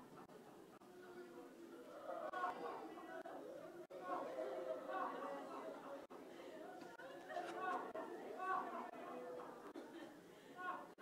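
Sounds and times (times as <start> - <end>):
many voices praying aloud: 0.0 - 11.0.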